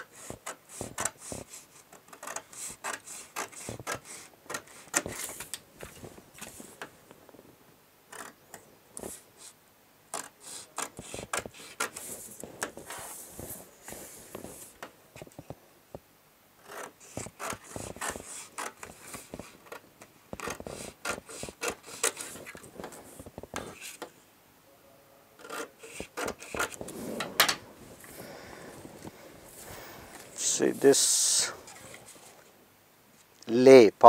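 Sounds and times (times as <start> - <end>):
paper sliding on wooden table: 25.9 - 32.3.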